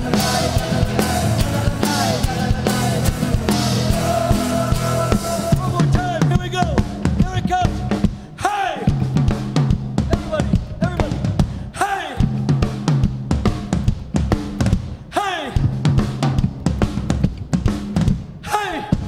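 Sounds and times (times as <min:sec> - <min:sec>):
electric bass line: 0:00.0 - 0:06.5
drum kit beat: 0:00.0 - 0:19.0.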